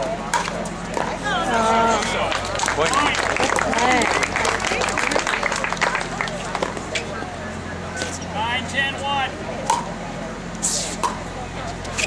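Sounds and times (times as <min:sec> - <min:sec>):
voices calling out: 0:00.0 - 0:12.0
scattered clapping: 0:01.9 - 0:07.1.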